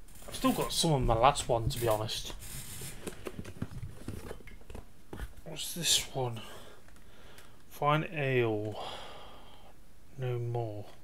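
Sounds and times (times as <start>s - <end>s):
box packaging rustling: 1.7s - 5.4s.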